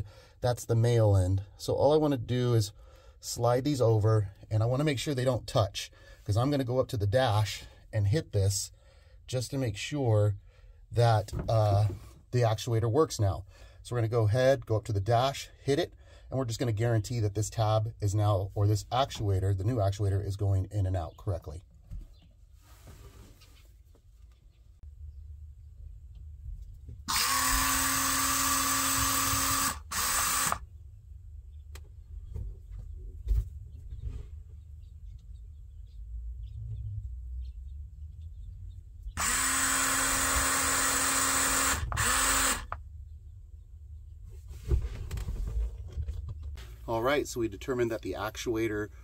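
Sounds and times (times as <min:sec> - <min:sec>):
geared motor whining: 0:27.0 - 0:30.6, 0:39.2 - 0:42.8.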